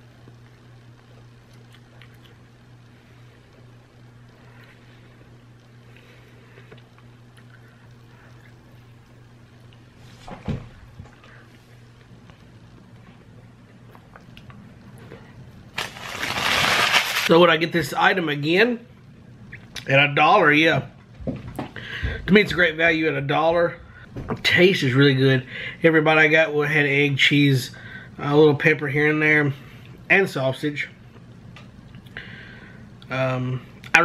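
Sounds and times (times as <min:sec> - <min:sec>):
low electrical hum: 0:00.0 - 0:34.0
person chewing quietly: 0:00.2 - 0:02.5, 0:03.5 - 0:09.9, 0:11.1 - 0:15.5.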